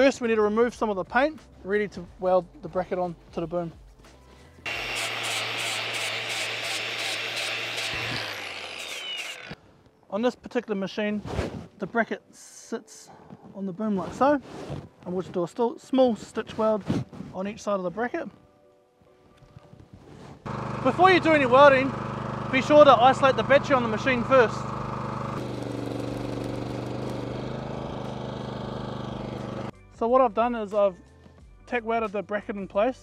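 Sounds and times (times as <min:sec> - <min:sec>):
angle grinder grinding metal: 0:04.7 - 0:09.6, 0:20.5 - 0:29.7
excavator diesel engine running: 0:20.5 - 0:29.7.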